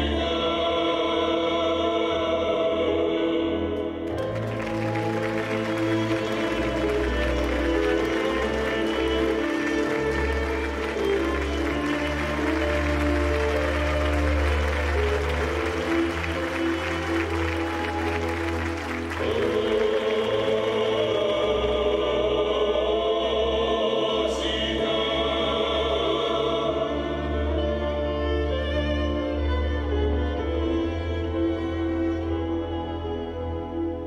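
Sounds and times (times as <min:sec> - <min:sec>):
choral music: 0:00.0 - 0:34.0
audience applauding: 0:04.1 - 0:21.6.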